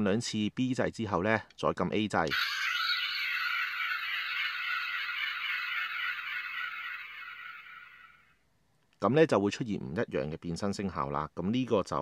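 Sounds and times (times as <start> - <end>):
toy electronic sound effect: 2.3 - 8.3.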